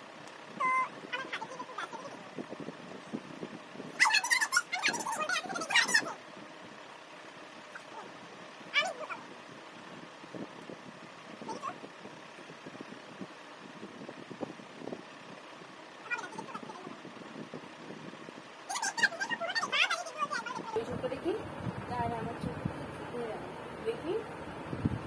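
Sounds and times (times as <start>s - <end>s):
girl squealing: 4.0s - 6.2s, 8.8s - 9.2s, 18.7s - 20.8s.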